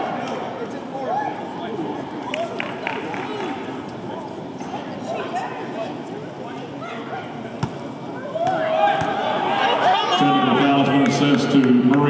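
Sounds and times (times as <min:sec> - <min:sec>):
arena crowd chatter: 0:00.0 - 0:12.0
crowd shouting: 0:08.1 - 0:10.9.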